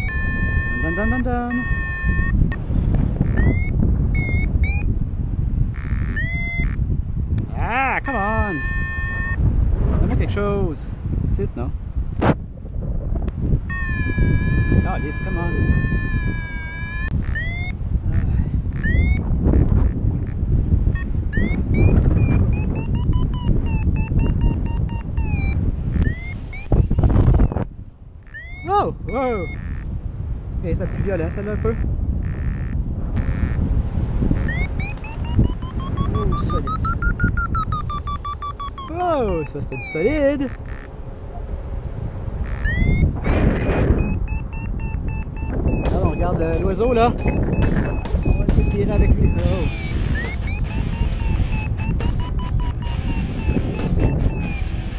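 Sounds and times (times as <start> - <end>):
variometer beeping in rising chirps: 0.0 - 2.6, 3.2 - 5.0, 5.7 - 6.8, 8.0 - 9.4, 13.7 - 17.8, 18.7 - 29.9, 30.9 - 33.7, 34.4 - 41.5, 42.4 - 54.9
wind noise on microphone: 0.0 - 54.9.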